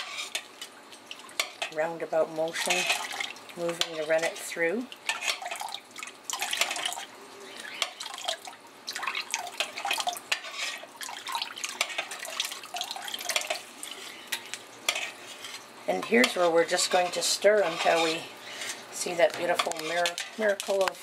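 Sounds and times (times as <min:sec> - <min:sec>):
spoon scraping metal pot: 0:00.0 - 0:00.5, 0:02.5 - 0:04.4, 0:05.1 - 0:05.6, 0:09.6 - 0:10.9, 0:11.7 - 0:12.2, 0:13.3 - 0:21.0
liquid splashing into pot: 0:02.6 - 0:04.0, 0:04.9 - 0:07.1, 0:07.7 - 0:15.1.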